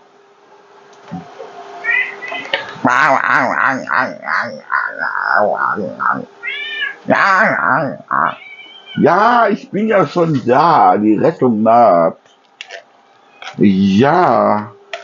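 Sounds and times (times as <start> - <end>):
cats meowing: 1.8 - 9.5, 13.0 - 13.6.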